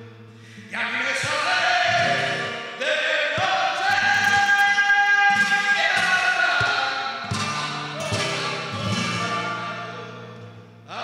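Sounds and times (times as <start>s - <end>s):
flamenco guitar: 0.0s - 11.0s
man singing: 0.5s - 11.0s.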